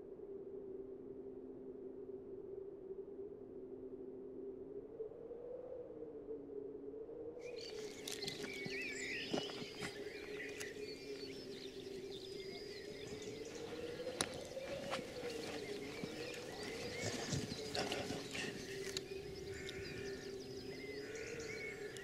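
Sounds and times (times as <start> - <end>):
low wavering hum: 0.0 - 22.0
birds singing: 7.4 - 22.0.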